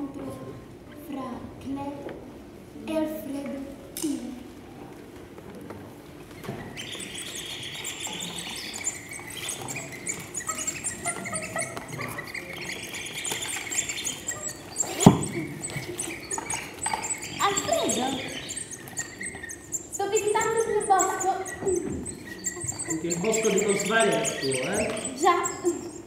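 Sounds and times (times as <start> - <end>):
small birds chirping: 6.1 - 26.0.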